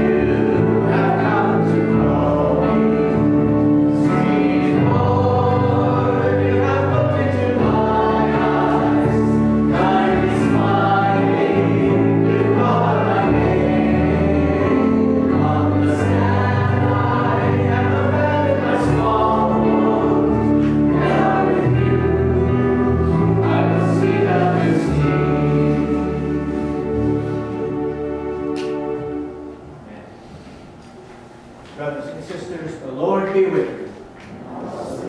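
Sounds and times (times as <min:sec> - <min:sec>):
congregation singing a hymn: 0:00.0 - 0:30.1
keyboard accompaniment: 0:00.0 - 0:30.1.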